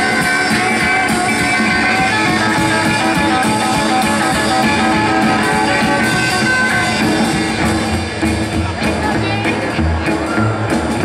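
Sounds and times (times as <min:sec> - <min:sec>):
drums: 0:00.0 - 0:11.0
lead guitar: 0:00.0 - 0:11.0
upright bass: 0:00.0 - 0:11.0.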